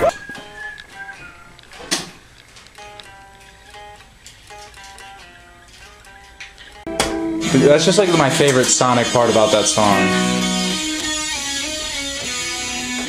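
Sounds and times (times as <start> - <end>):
picked guitar melody: 0.0 - 13.0.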